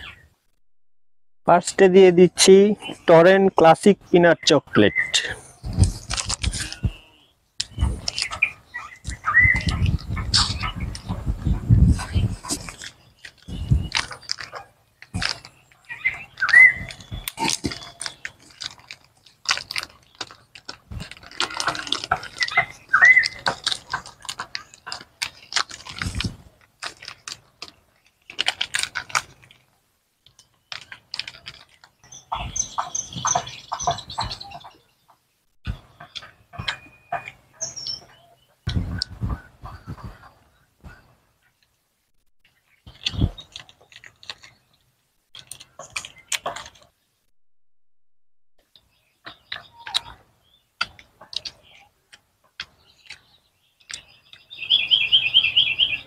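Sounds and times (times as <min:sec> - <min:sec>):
bird chirping: 0:00.0 - 0:00.4, 0:01.8 - 0:28.4, 0:30.3 - 0:47.3, 0:48.6 - 0:56.0
crunching and chewing: 0:05.2 - 0:11.3, 0:11.9 - 0:34.8, 0:35.7 - 0:38.2, 0:42.4 - 0:47.1, 0:48.6 - 0:55.2
plastic wrappers crinkling: 0:05.8 - 0:07.0, 0:07.6 - 0:09.2, 0:12.3 - 0:32.8, 0:42.6 - 0:47.0.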